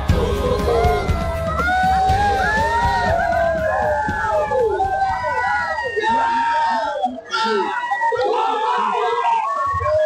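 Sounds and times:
chorus of men chanting: 0.0 - 1.6.

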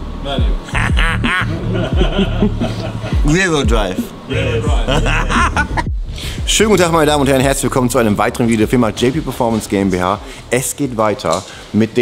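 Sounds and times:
music with deep beat: 0.0 - 10.6
man laughing loudly: 0.7 - 5.9.

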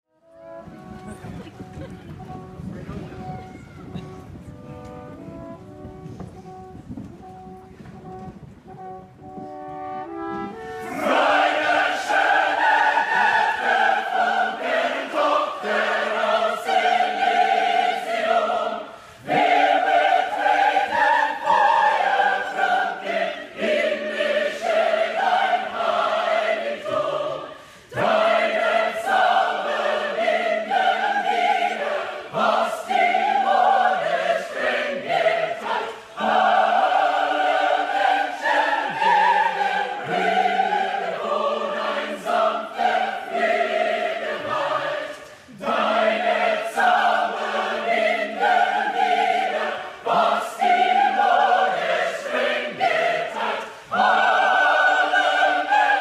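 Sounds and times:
choir singing: 10.4 - 56.0.

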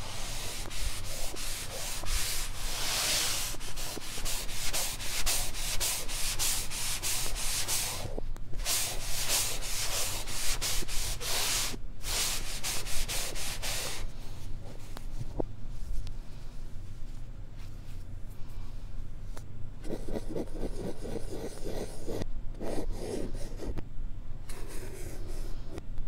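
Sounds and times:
eraser rubbing on blackboard reversed: 0.0 - 14.0.

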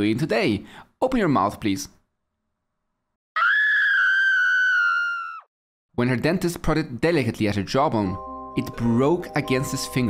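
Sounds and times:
high-pitched scream: 3.4 - 5.5.

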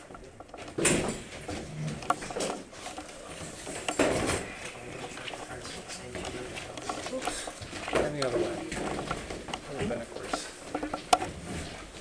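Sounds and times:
light clicks and knocks: 0.0 - 12.0
indistinct conversation: 1.6 - 11.3.

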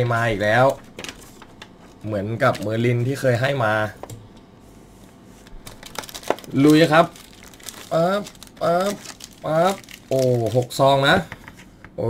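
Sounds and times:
foil packs crinkling: 0.0 - 3.0, 5.4 - 11.2.

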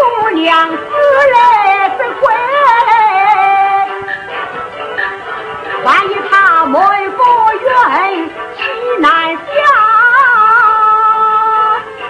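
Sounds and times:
opera melodic line: 0.0 - 12.0.

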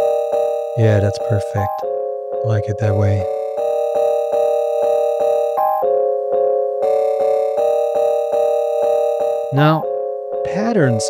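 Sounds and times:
sampled keyboard chords in a loop: 0.0 - 11.0.

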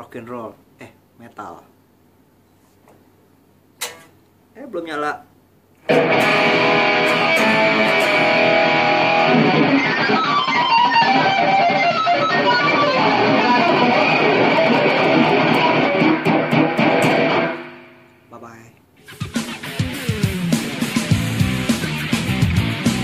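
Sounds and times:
distorted electric guitar solo: 5.8 - 18.1, 19.0 - 23.0.

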